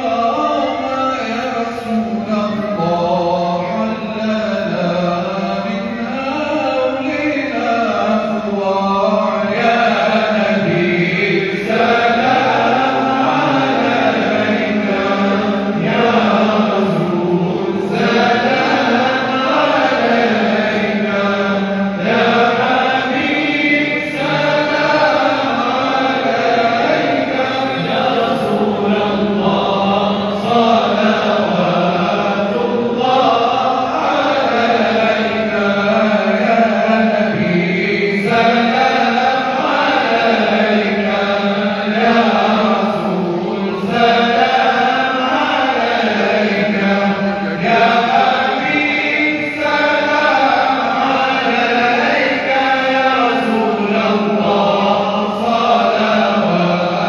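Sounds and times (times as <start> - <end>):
voices chanting: 7.9 - 57.0.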